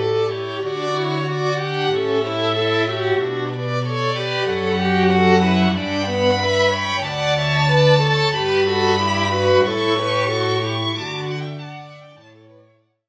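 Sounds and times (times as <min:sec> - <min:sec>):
low cello notes: 0:00.0 - 0:12.4
violins melody: 0:00.0 - 0:12.7.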